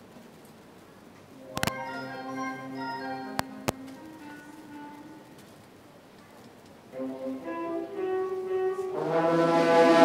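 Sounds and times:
concert band holding chord: 8.8s - 10.0s.

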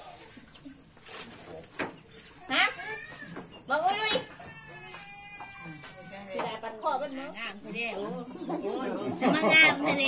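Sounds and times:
quiet family talk: 0.0s - 10.0s.

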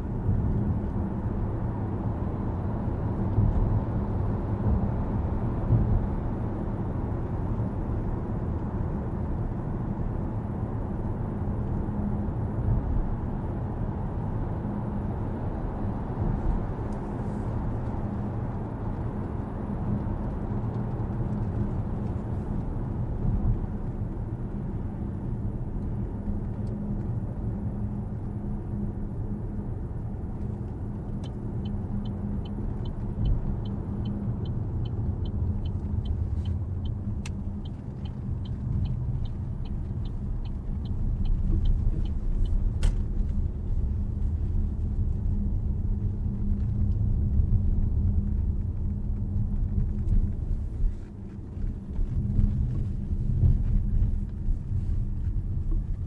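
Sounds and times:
turn signal ticking: 30.2s - 56.0s
tyre and road rumble: 34.2s - 56.0s.

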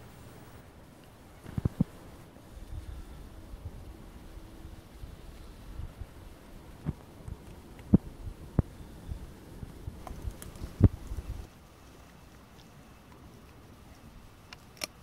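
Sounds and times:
wind rumble on microphone: 1.2s - 11.5s
bear cub licking and chewing fur: 9.6s - 15.0s.

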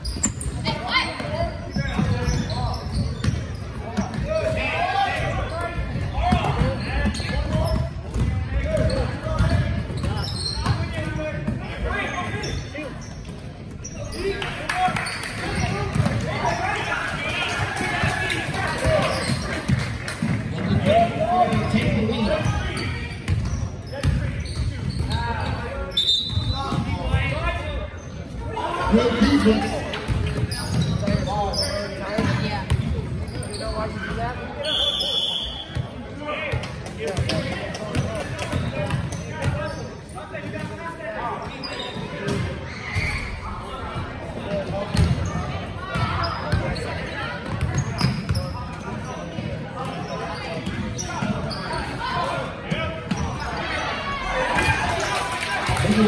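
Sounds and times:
voices echoing in gym: 0.0s - 56.0s.

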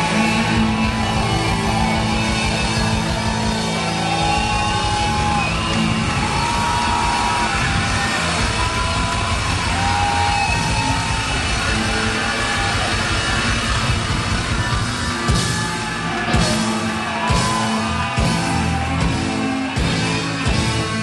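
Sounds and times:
electric guitars bending notes: 0.0s - 21.0s
live rock band playing: 0.0s - 21.0s.

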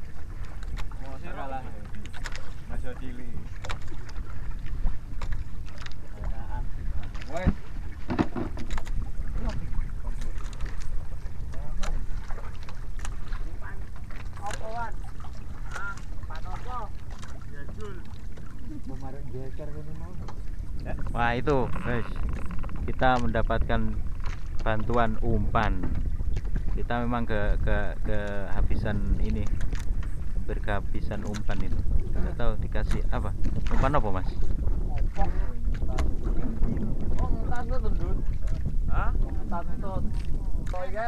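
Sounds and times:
wind and sea rumble: 0.0s - 41.0s
knocks on boat: 7.1s - 8.9s.

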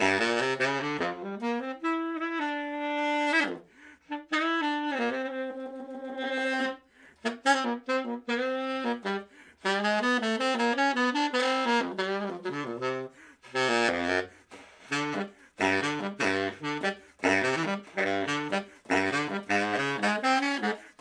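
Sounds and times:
baritone saxophone melody: 0.0s - 21.0s.

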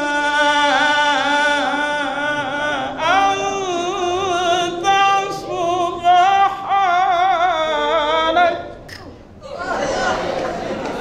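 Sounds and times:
recitation: 0.0s - 11.0s
murmur of many voices: 2.6s - 11.0s.

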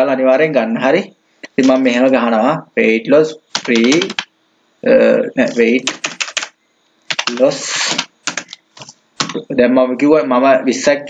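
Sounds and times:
keyboard keys tapping: 3.5s - 4.3s, 5.8s - 6.5s, 7.1s - 9.5s.

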